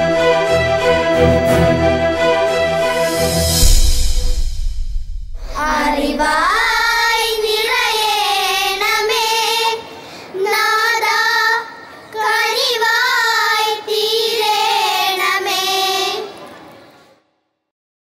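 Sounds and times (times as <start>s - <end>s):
children singing in unison: 5.5s - 16.6s.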